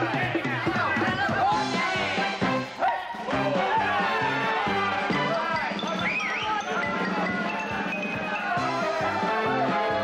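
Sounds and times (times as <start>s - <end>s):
pit orchestra dance music: 0.0s - 10.0s.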